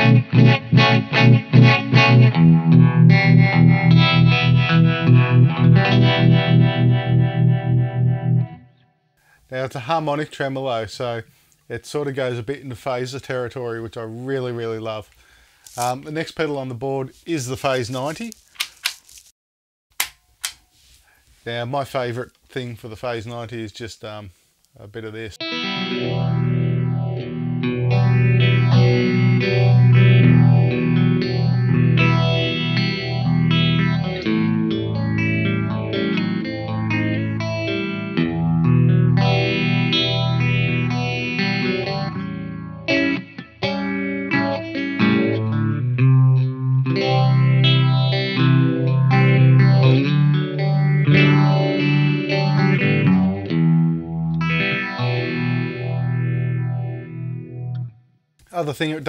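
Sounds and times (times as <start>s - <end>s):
overdriven electric guitar with phaser: 0.0s - 8.8s, 25.4s - 58.0s.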